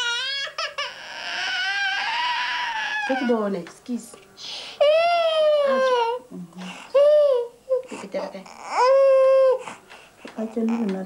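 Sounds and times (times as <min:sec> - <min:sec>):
toddler crying: 0:00.0 - 0:03.5, 0:04.8 - 0:06.2, 0:06.9 - 0:09.8.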